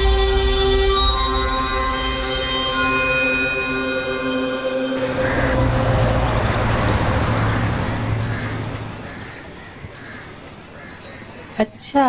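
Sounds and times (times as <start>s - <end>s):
road traffic hum: 3.9s - 12.0s.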